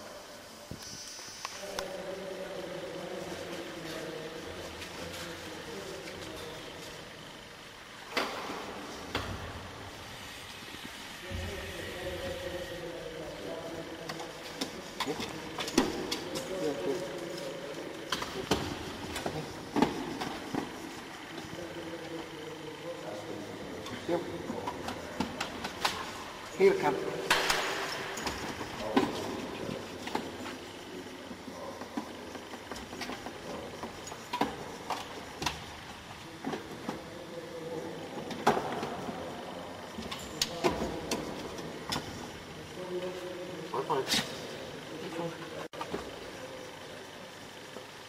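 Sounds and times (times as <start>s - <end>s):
indistinct background voices: 0.0s - 48.0s.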